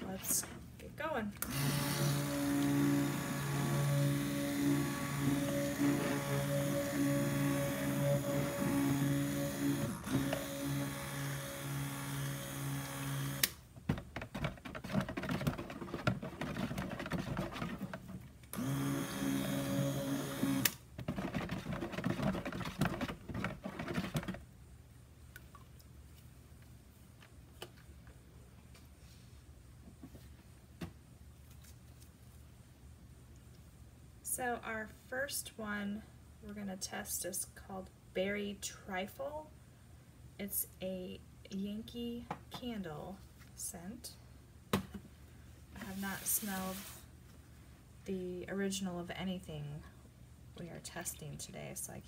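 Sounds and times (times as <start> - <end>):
immersion blender running: 1.4 - 13.5, 18.6 - 20.7.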